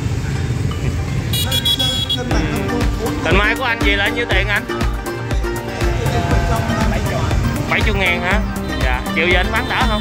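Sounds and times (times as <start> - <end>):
street traffic rumble: 0.0 - 10.0
vehicle horn toot: 1.3 - 2.4, 8.5 - 10.0.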